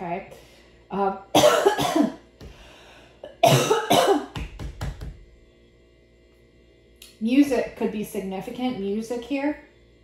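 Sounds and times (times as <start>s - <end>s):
woman coughing: 1.3s - 2.2s, 3.2s - 4.4s.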